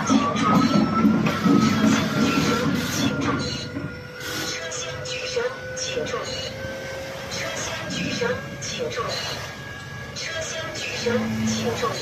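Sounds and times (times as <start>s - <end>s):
hydraulic system whining: 0.0s - 12.0s.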